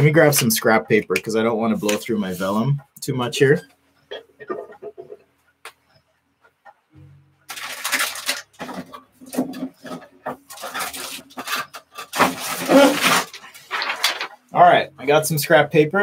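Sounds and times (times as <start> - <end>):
paper sheets rustling: 7.5 - 14.5.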